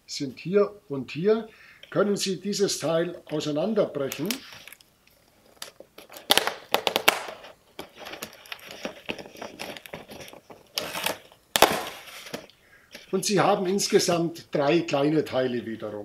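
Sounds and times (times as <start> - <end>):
cardboard rustling: 3.1 - 13.3
cardboard cracking and tearing: 5.5 - 12.5.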